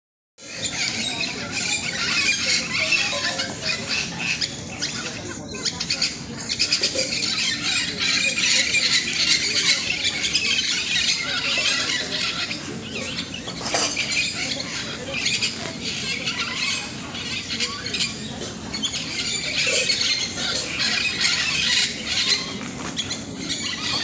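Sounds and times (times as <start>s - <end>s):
parakeets squawking and chattering: 0.4s - 24.0s.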